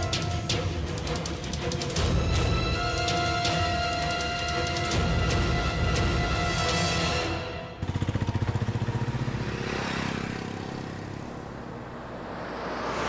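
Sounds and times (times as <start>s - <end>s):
music: 0.0s - 7.8s
car passing whoosh: 9.4s - 13.0s.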